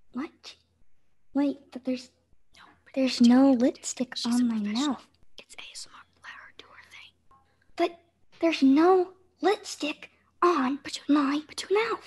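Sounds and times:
person whispering: 0:02.5 - 0:07.2.

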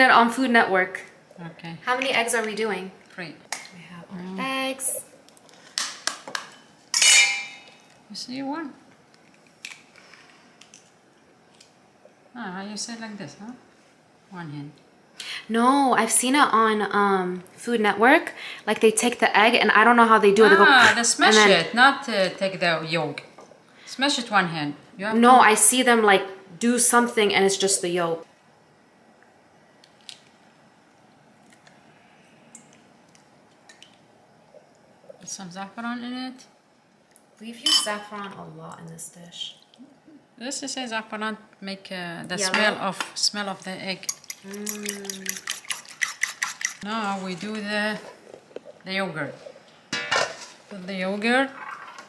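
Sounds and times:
bowl ringing: 0:07.0 - 0:07.8, 0:37.6 - 0:38.1
eggshell cracking: 0:44.1 - 0:46.8.

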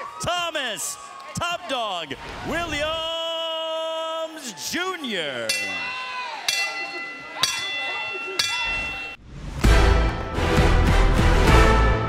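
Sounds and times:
crowd voices: 0:04.2 - 0:09.2
boxing ring bell: 0:05.5 - 0:09.2.

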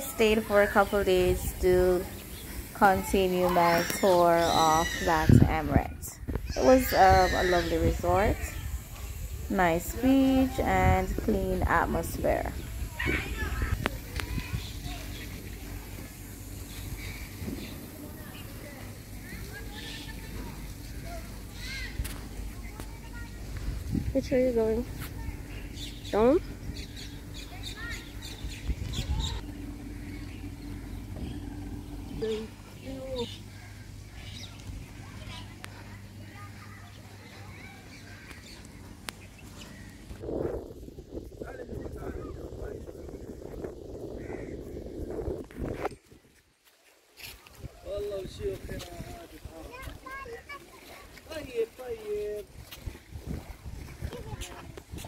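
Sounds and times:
wind on microphone: 0:00.0 - 0:16.0, 0:23.2 - 0:32.5, 0:40.1 - 0:46.4, 0:52.4 - 0:55.0
small birds chirping: 0:00.0 - 0:45.3.

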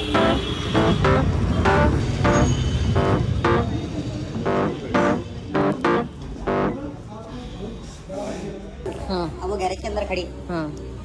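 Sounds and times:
plucked guitar notes: 0:00.0 - 0:03.8, 0:04.4 - 0:06.8
steady bass line: 0:00.0 - 0:06.8.

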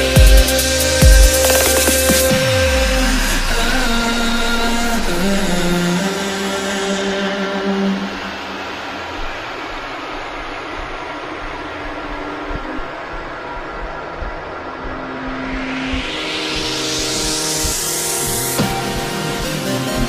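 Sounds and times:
beatless wash of noise: 0:00.0 - 0:20.0
held synth notes: 0:00.0 - 0:20.0.

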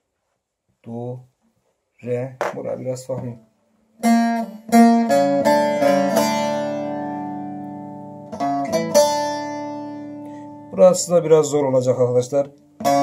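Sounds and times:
plucked lute notes: 0:02.4 - 0:13.0.

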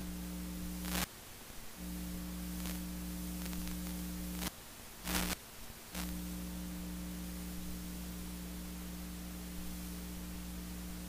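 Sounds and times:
background hiss: 0:00.0 - 0:11.0
electrical mains hum: 0:00.0 - 0:11.0
sharp crackle: 0:00.7 - 0:01.1, 0:01.8 - 0:06.3.

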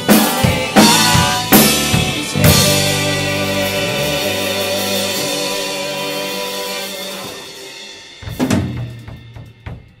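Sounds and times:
drum kit hits: 0:00.0 - 0:10.0.

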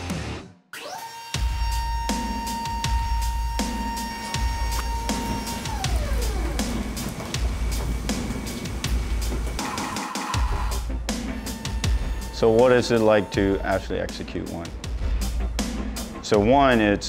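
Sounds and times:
music with deep bass beat: 0:01.5 - 0:16.8
high tone sliding down: 0:03.6 - 0:10.6.

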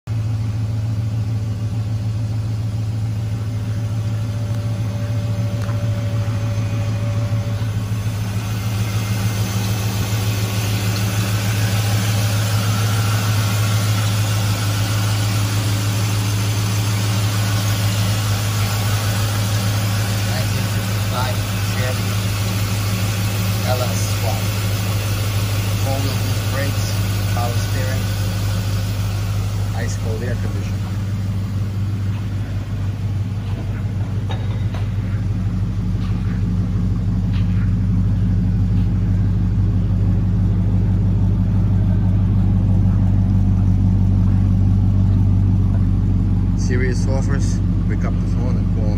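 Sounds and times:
car engine idling: 0:00.0 - 0:48.9.

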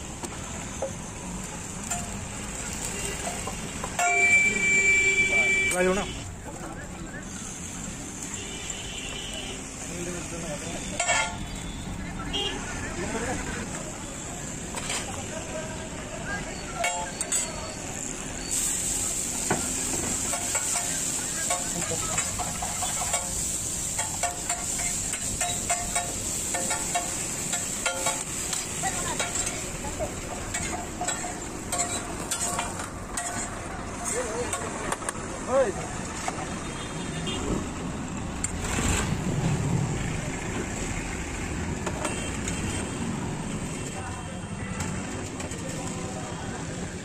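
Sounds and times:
oil sizzling on a griddle: 0:00.0 - 0:04.7, 0:16.6 - 0:34.8
metal spatula scraping griddle: 0:30.5 - 0:34.2.

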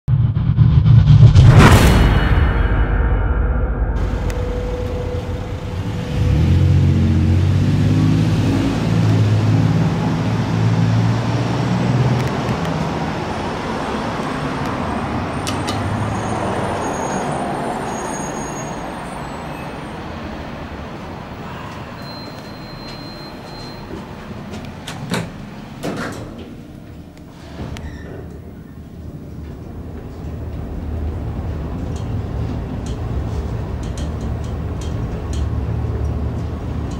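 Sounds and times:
large vehicle engine: 0:00.1 - 0:36.9
steady traffic noise: 0:04.0 - 0:36.9.

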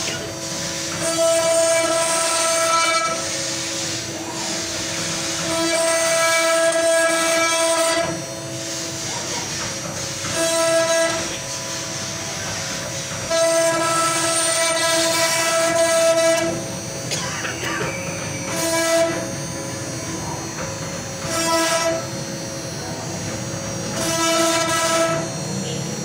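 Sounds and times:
router bit cutting wood whine: 0:00.0 - 0:26.0
router spindle high whine: 0:00.0 - 0:26.0.

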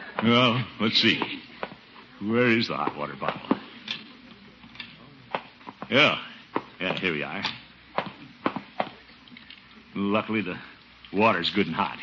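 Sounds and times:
man speaking: 0:00.2 - 0:01.4, 0:02.2 - 0:03.6, 0:05.8 - 0:07.6, 0:09.9 - 0:12.0.

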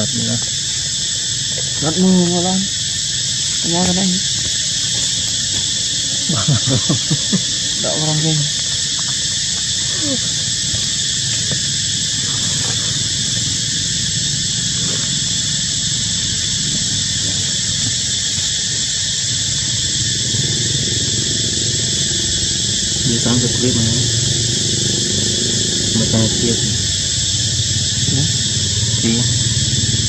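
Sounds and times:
insect chorus drone: 0:00.0 - 0:30.0.

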